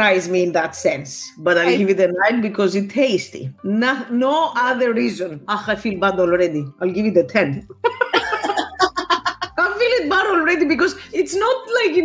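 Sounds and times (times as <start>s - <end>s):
background music: 0.0s - 12.0s
people talking: 0.0s - 12.0s
woman laughing: 7.8s - 9.6s.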